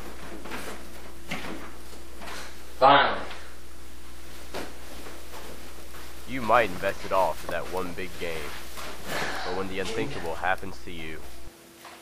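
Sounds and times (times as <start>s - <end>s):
electrical hum and hiss: 0.0s - 12.0s
person speaking loudly: 6.3s - 8.6s, 9.5s - 11.2s.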